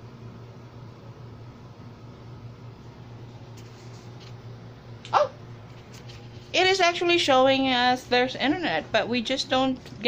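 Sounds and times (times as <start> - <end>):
low room hum: 0.0 - 10.0
dog yipping: 5.1 - 5.4.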